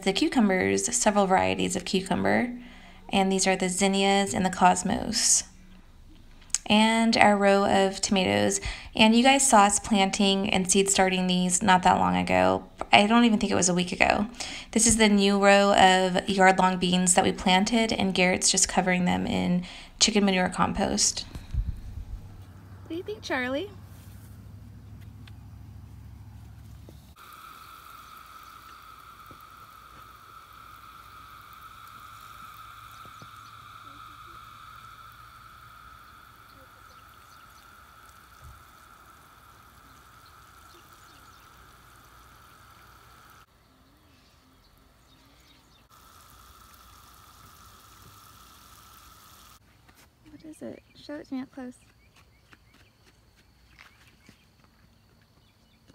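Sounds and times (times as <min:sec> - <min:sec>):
low rumble: 0:21.1 - 0:26.6.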